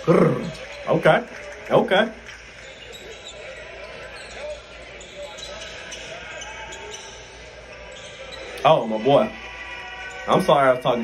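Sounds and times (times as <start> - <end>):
faint crowd voices: 0.0 - 11.0.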